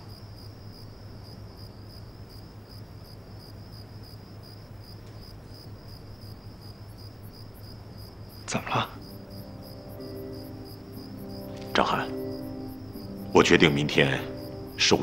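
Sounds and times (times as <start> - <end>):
crickets chirping: 0.0 - 15.0.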